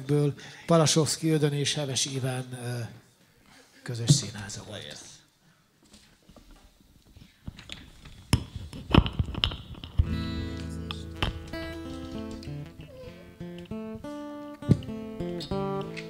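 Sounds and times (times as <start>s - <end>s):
strummed guitar: 9.3s - 16.0s.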